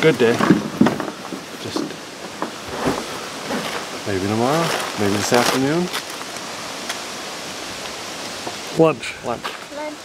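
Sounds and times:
steady outdoor hiss: 0.0s - 10.0s
man speaking: 4.0s - 5.9s, 8.7s - 9.6s.

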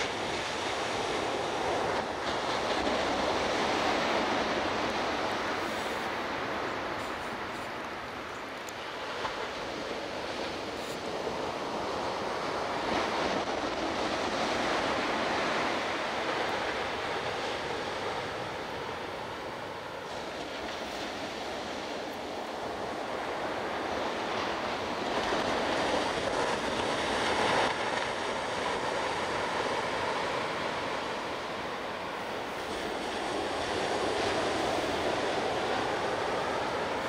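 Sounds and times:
ocean surf breaking on beach: 0.0s - 37.0s.

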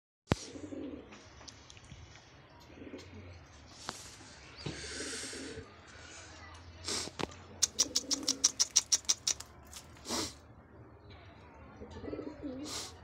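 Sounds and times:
pigeons cooing: 0.4s - 1.1s, 4.7s - 5.6s, 7.6s - 9.4s, 11.9s - 12.8s.

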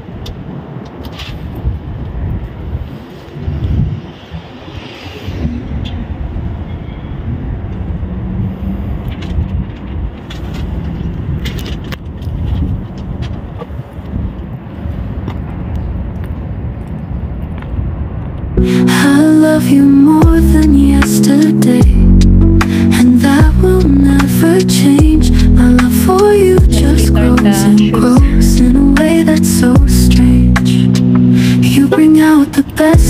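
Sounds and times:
low rumble: 18.0s - 33.0s.

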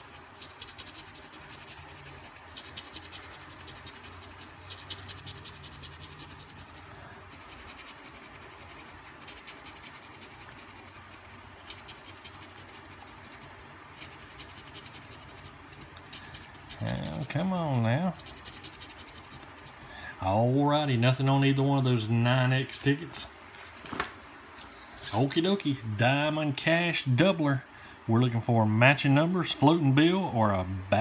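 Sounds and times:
coin scratching lottery ticket: 0.0s - 20.0s.

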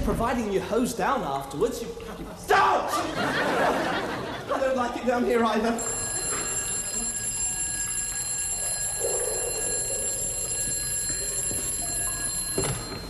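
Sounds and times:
electric telephone bell ringing: 5.8s - 13.0s.

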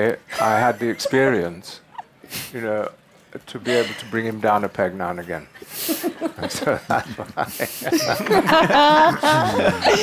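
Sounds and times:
people laughing: 5.9s - 10.0s.

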